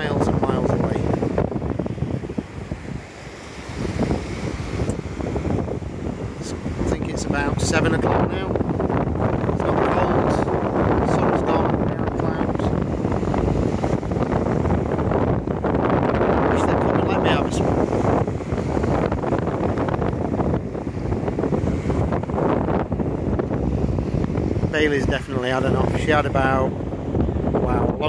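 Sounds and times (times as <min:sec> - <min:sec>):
waves breaking on shore: 0:00.0 - 0:28.0
wind buffeting microphone: 0:00.0 - 0:28.0.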